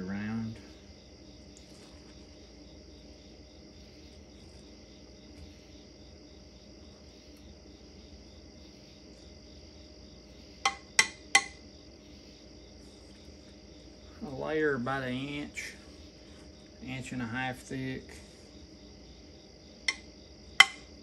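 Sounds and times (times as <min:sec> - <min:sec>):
cup knocking on stoneware crock: 0:10.6 - 0:11.6, 0:19.9 - 0:20.9.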